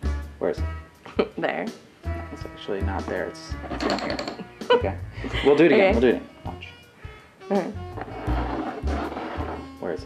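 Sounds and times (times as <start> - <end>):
background music: 0.0 - 10.0
bottle caps scraping on wooden table: 3.6 - 4.4, 8.0 - 9.7.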